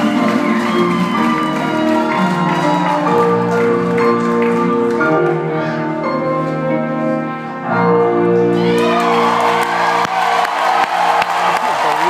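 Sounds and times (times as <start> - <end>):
live band playing chords: 0.0 - 10.2
piano: 0.0 - 12.0.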